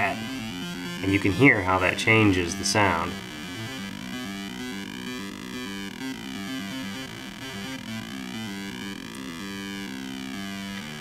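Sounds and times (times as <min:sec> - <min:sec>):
square-wave chip melody: 0:00.0 - 0:11.0.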